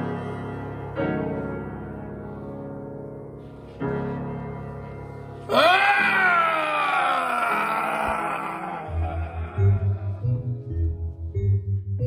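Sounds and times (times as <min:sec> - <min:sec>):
person screaming: 0:05.5 - 0:10.3.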